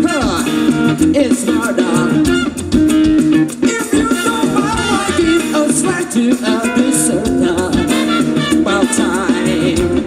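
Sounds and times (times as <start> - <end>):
person singing: 0.0 - 2.6, 3.6 - 10.0
electric guitar: 0.0 - 10.0
live funk band playing: 0.0 - 10.0.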